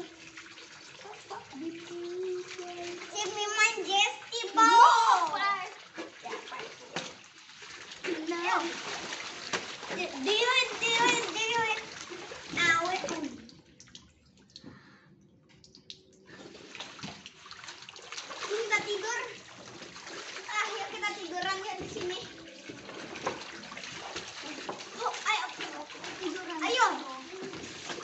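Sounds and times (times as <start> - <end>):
children splashing in water: 0.0 - 14.0, 16.4 - 28.0
water sloshing: 0.0 - 14.9, 15.5 - 28.0
children calling out: 1.3 - 5.8, 24.4 - 27.5.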